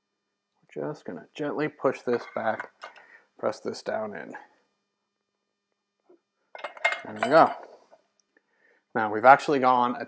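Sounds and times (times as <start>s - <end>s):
light metallic clinks: 2.1s - 3.0s, 6.6s - 7.7s.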